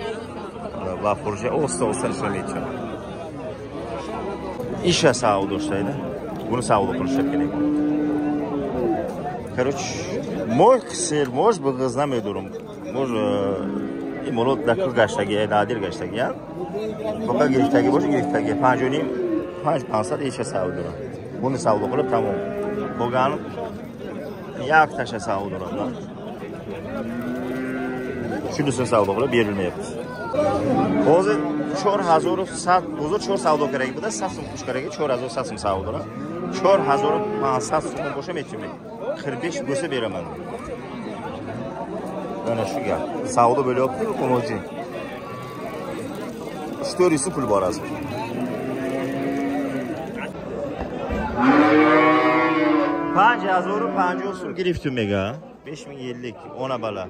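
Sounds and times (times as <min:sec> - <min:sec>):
cow mooing: 0:06.7 - 0:08.9, 0:13.1 - 0:14.8, 0:17.3 - 0:20.9, 0:21.6 - 0:23.6, 0:27.0 - 0:28.5, 0:30.5 - 0:33.2, 0:35.9 - 0:38.2, 0:46.8 - 0:50.2, 0:51.3 - 0:54.6.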